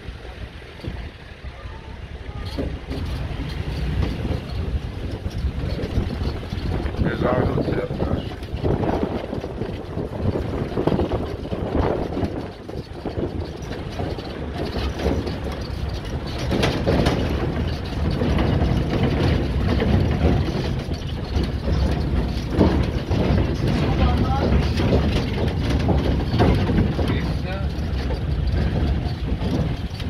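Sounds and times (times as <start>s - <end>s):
vehicle running rumble: 0.0s - 30.0s.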